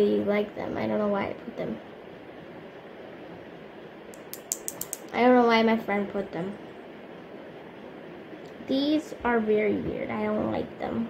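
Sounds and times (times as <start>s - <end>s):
metal safety pins clicking: 4.2s - 5.1s.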